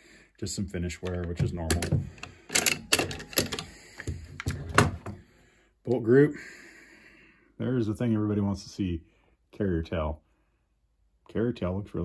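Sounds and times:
rifle bolt carrier metal clicks: 0:01.0 - 0:04.8.

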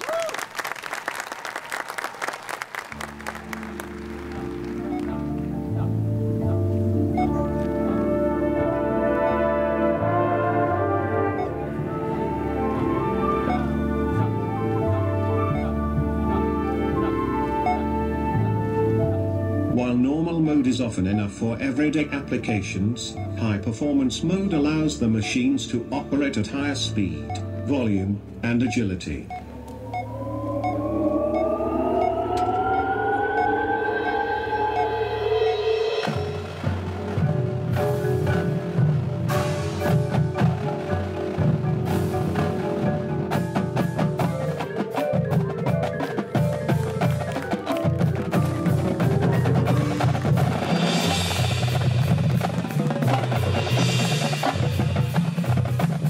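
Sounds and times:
marching band playing: 0:00.0 - 0:20.0, 0:34.1 - 0:56.0
steady low drone: 0:28.2 - 0:42.0.

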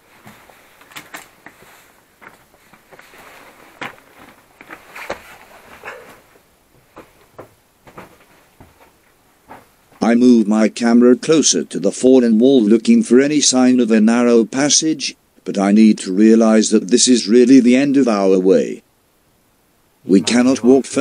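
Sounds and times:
footsteps on rock rubble: 0:00.0 - 0:10.0
loose stones shifting: 0:00.1 - 0:06.3.

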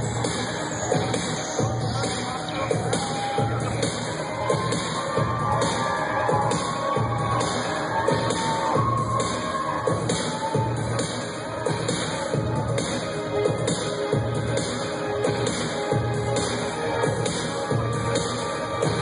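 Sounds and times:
loud electro-industrial music: 0:00.0 - 0:19.0
crowd cheering: 0:00.8 - 0:12.2.

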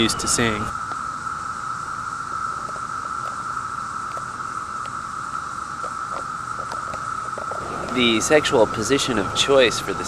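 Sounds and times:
cicadas droning: 0:00.0 - 0:10.0
faint ticks: 0:02.3 - 0:08.1.

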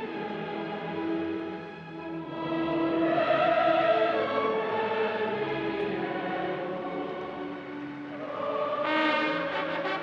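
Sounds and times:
choir singing long held notes: 0:00.0 - 0:10.0.

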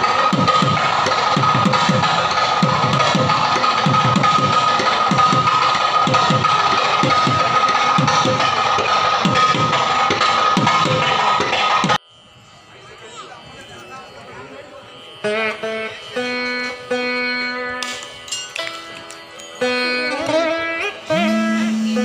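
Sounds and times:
drums in quick dense rhythm: 0:00.0 - 0:12.0
steady high ringing tone: 0:12.0 - 0:22.0.

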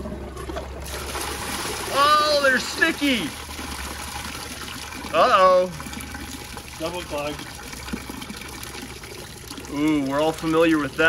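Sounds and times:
toilet flushing: 0:00.0 - 0:11.0.

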